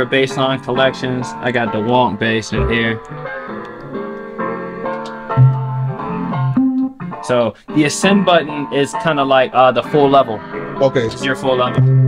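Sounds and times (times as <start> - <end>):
synth bass notes: 2.6 - 3.0.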